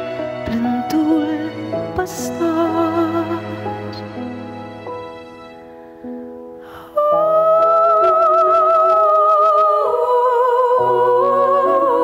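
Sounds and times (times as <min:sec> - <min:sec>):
woman singing with vibrato: 0:00.5 - 0:04.0, 0:06.7 - 0:12.0
breath: 0:06.6 - 0:06.9.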